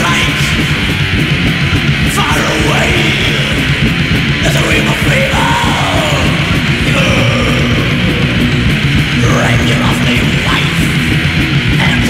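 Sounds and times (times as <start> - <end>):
high sliding guitar line: 0.0 - 12.0
thrash metal band playing: 0.0 - 12.0.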